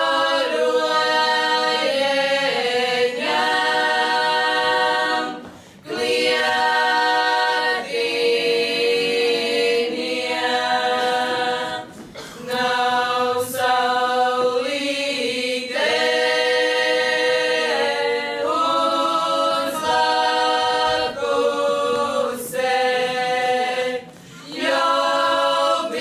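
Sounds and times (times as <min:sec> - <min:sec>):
women singing unaccompanied: 0:00.0 - 0:26.0.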